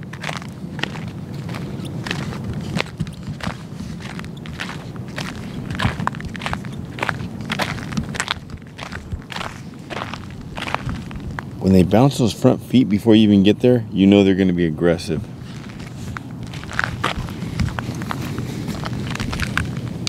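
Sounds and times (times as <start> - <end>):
footsteps on gravel: 0.0 - 11.6, 15.2 - 20.0.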